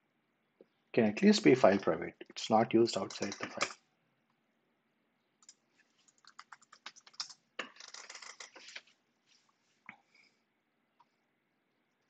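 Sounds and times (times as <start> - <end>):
computer keyboard keystrokes: 3.1 - 3.8, 5.4 - 8.4.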